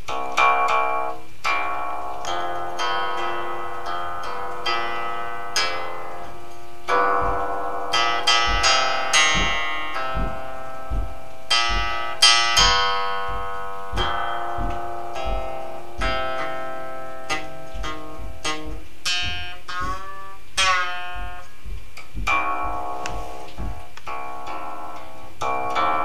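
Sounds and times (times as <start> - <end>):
plucked zither notes: 0.0 - 26.0.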